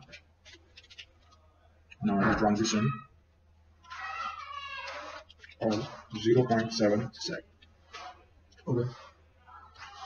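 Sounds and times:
high-pitched animal cry: 3.9s - 5.2s.

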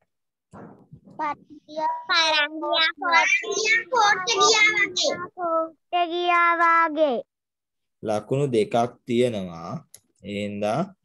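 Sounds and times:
child speaking sing-song: 1.2s - 7.2s.

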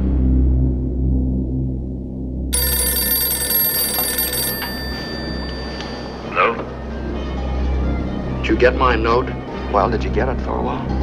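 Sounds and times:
telephone bell ringing: 2.6s - 6.8s.

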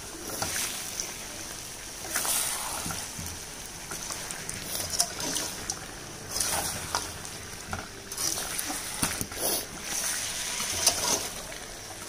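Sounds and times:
frying sizzle: 0.0s - 12.0s.

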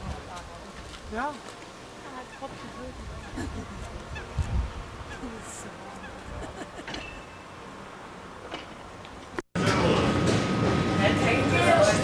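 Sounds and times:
tram rumbling with high whine: 2.5s - 12.0s.

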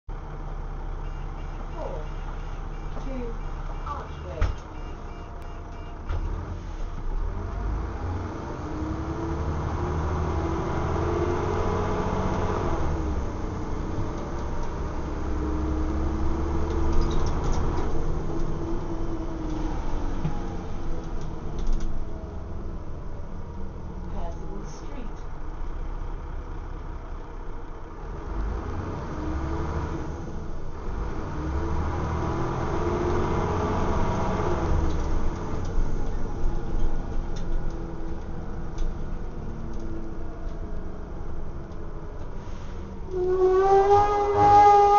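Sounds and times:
bus engine hum: 0.1s - 44.9s.

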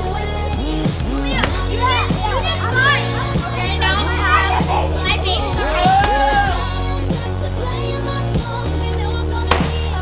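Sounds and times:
background music: 0.0s - 10.0s
children shouting and squealing: 1.1s - 7.1s
stick hitting pinata: 9.5s - 9.8s.

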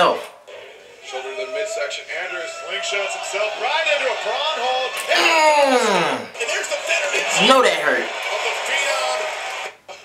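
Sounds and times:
arena crowd noise: 0.0s - 10.0s
commentator talking: 2.1s - 8.1s.

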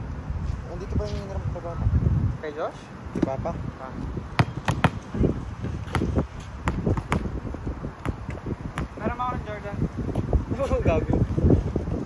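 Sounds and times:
volleyball slaps: 4.4s - 5.0s, 5.8s - 7.3s.

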